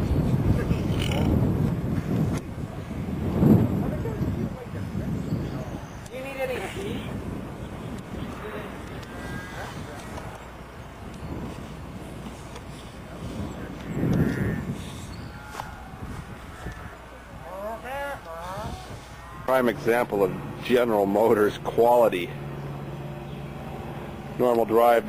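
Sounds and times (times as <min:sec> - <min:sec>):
steady low hum: 0:00.0 - 0:25.0
indistinct voices talking: 0:02.5 - 0:25.0.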